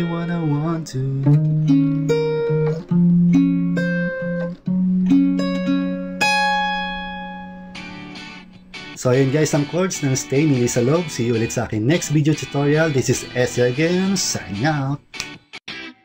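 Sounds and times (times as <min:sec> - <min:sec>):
fingerpicked acoustic guitar: 0:00.0 - 0:15.4.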